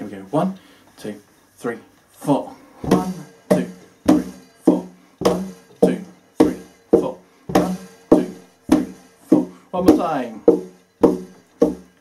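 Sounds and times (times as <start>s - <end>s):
foot beats on floor: 2.8s - 12.0s
hand strikes on wooden cajon: 2.8s - 12.0s.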